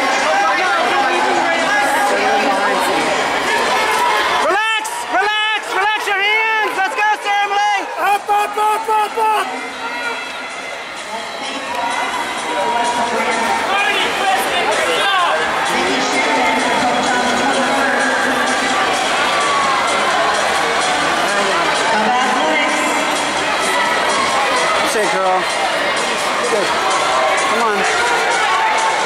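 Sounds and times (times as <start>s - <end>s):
murmur of crowd chatter: 0.0s - 29.0s.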